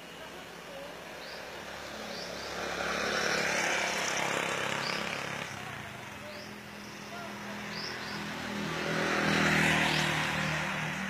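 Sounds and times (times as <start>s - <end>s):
motor vehicle passing by: 1.1s - 11.0s.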